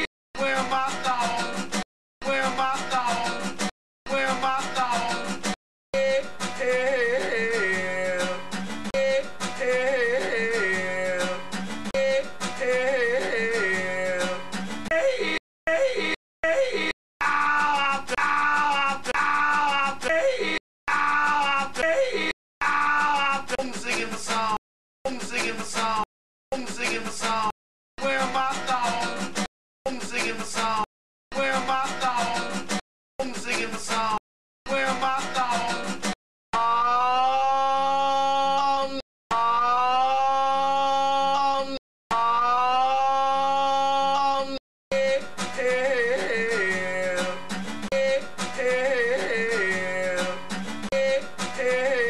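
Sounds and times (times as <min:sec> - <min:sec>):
person singing: 0:00.0 - 0:52.0
acoustic guitar strumming: 0:00.6 - 0:01.8, 0:02.4 - 0:15.4, 0:45.0 - 0:52.0.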